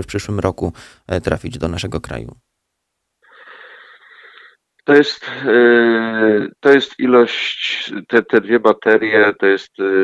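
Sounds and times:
man drawing hissing breath: 0:03.2 - 0:04.6
man's voice: 0:04.9 - 0:10.0.

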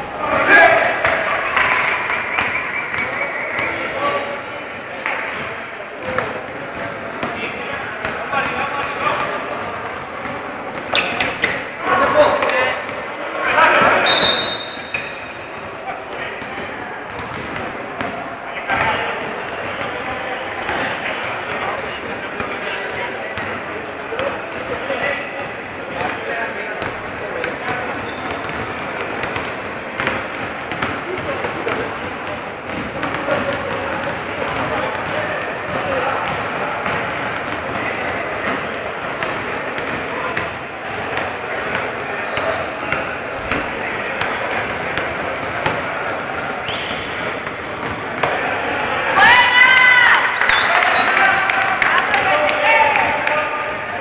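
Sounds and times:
people talking and calling: 0:00.0 - 0:54.0
basketball bouncing: 0:05.3 - 0:11.6, 0:16.4 - 0:48.9.

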